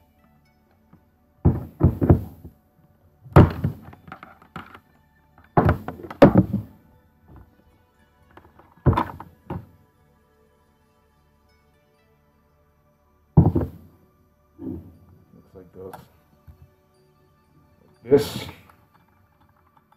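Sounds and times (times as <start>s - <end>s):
plastic parts knocking on tabletop: 1.5s - 2.4s, 3.4s - 4.8s, 5.6s - 6.7s, 8.5s - 9.6s, 13.4s - 13.8s.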